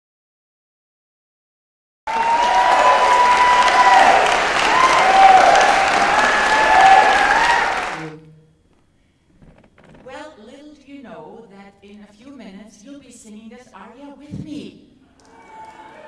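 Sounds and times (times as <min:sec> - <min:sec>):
audience applauding: 0:02.1 - 0:08.1, 0:15.2 - 0:16.0.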